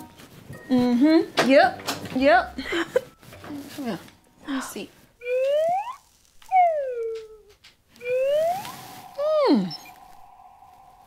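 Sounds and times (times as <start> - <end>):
slide whistle glides: 5.2 - 7.0, 8.0 - 11.0.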